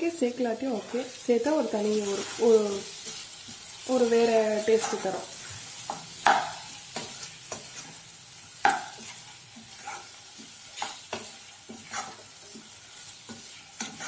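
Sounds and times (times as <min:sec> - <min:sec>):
potatoes frying sizzle: 0:00.0 - 0:14.0
spatula scraping a saucepan: 0:04.6 - 0:06.0, 0:08.8 - 0:14.0.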